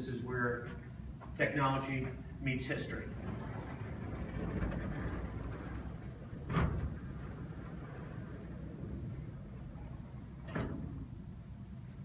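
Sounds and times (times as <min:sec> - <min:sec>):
wooden panels sliding on track: 0:02.9 - 0:11.4.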